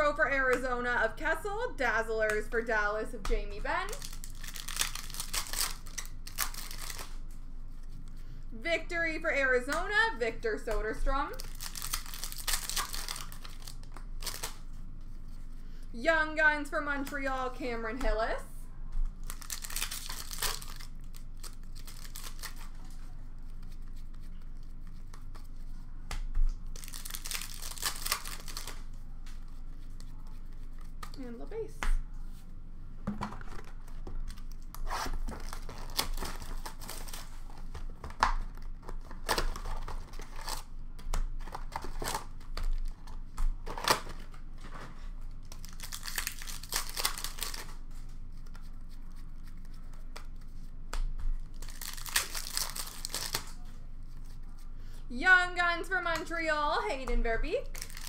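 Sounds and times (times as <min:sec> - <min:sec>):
wrapper crinkling: 0:03.8 - 0:07.4, 0:11.3 - 0:14.7, 0:19.1 - 0:24.7, 0:26.6 - 0:29.0, 0:33.4 - 0:40.7, 0:45.4 - 0:48.6, 0:51.4 - 0:53.7, 0:57.6 - 0:58.0
card pack wrappers tearing: 0:03.9 - 0:07.4, 0:11.3 - 0:14.6, 0:19.2 - 0:22.8, 0:26.8 - 0:29.0, 0:33.4 - 0:40.7, 0:45.4 - 0:47.8, 0:51.5 - 0:53.6, 0:57.6 - 0:58.0.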